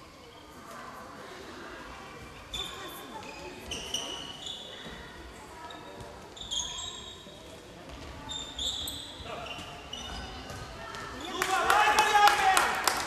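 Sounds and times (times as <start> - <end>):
sneaker squeaks: 2.3 - 11.4
ball bouncing on court: 9.4 - 11.4.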